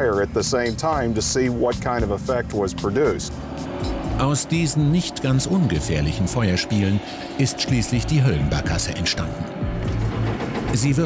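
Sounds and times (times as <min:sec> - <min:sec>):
background music: 0:00.0 - 0:11.0
man speaking: 0:04.2 - 0:09.5.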